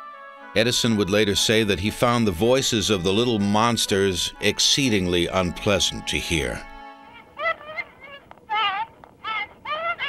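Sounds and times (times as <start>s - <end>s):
record hiss: 0.0s - 10.0s.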